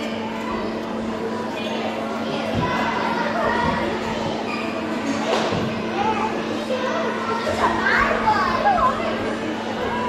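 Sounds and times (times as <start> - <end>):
children's voices chattering: 0.0 - 10.0.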